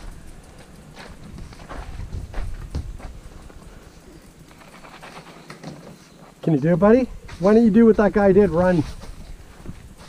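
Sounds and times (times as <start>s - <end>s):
footsteps on wooden ramp: 0.9s - 3.6s.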